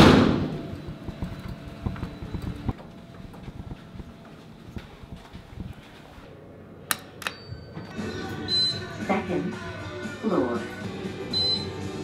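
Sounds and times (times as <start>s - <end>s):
soft footsteps: 0.7s - 6.3s.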